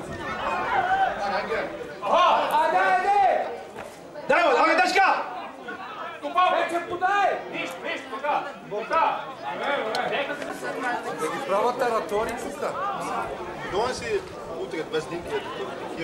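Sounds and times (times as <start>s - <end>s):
people talking over one another: 0.0s - 16.0s.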